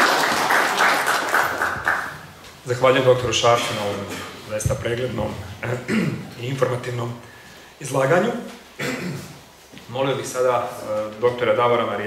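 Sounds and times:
audience applauding: 0.0s - 2.2s.

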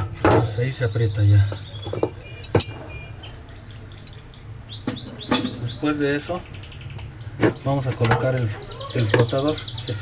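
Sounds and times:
small bird chirping: 0.6s - 10.0s.

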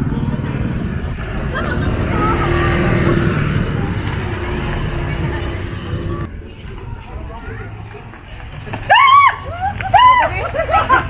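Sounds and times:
vehicle engine passing: 0.0s - 6.9s.

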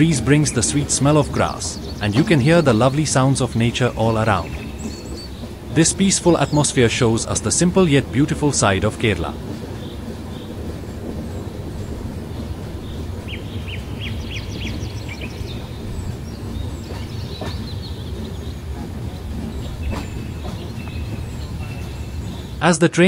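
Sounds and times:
bird chirping: 0.0s - 22.6s
moving train rumble: 0.0s - 23.0s.

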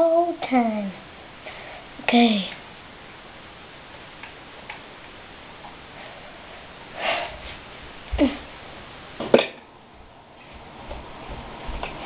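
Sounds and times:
steady hiss: 0.0s - 10.5s.

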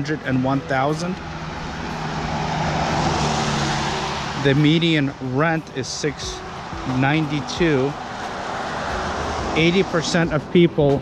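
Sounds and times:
truck driving past: 0.0s - 11.0s.

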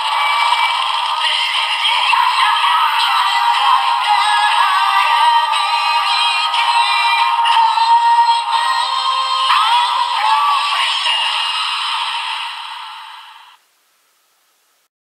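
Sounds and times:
tinny electronic toy song: 0.0s - 13.6s.

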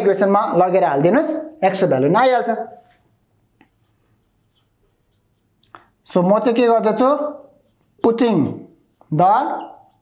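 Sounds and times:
marker pen writing on whiteboard: 2.6s - 10.0s.

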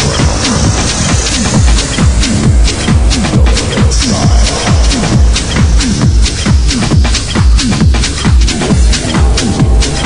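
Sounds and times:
house music with kick drum: 0.0s - 10.0s.

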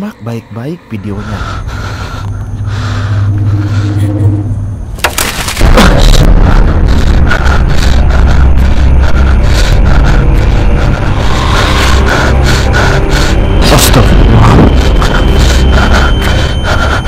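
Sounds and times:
low steady hum: 0.0s - 17.0s
sudden crack: 5.0s - 6.5s.

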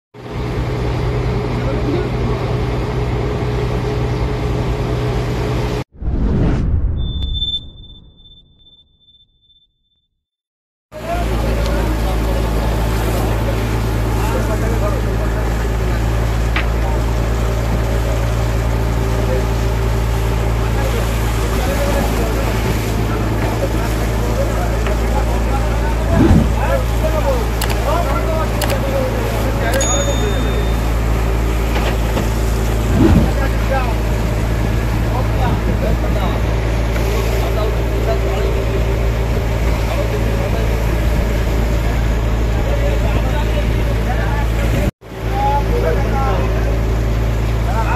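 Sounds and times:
boat engine droning: 11.0s - 47.9s
water splashing along hull: 11.2s - 35.0s.

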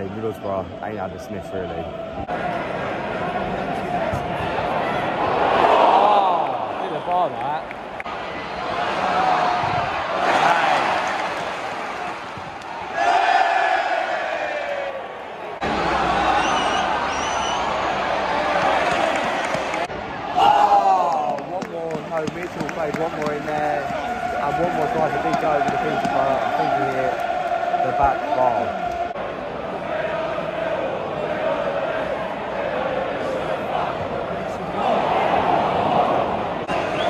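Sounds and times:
football crowd shouting and chanting: 0.0s - 37.0s.

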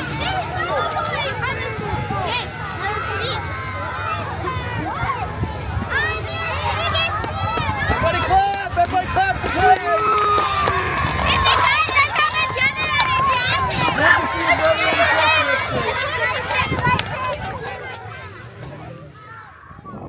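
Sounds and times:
children talking and calling out: 0.0s - 8.4s, 10.4s - 20.0s.

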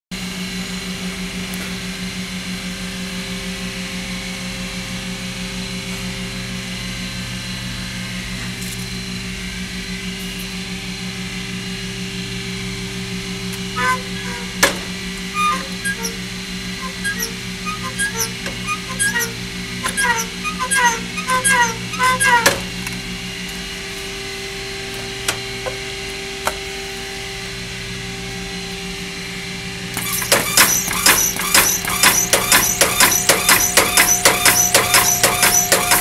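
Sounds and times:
motor rig humming: 12.5s - 26.4s
linkage squeaking: 13.8s - 22.8s, 30.0s - 36.0s
sharp click: 30.0s - 36.0s.

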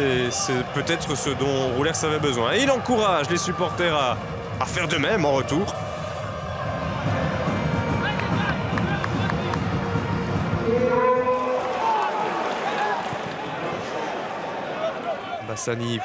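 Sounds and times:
stadium crowd voices: 0.0s - 16.0s.

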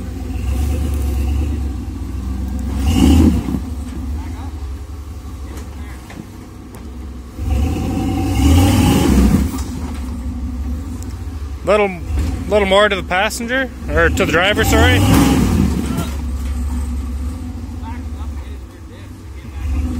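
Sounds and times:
truck engine revving: 0.0s - 19.9s.

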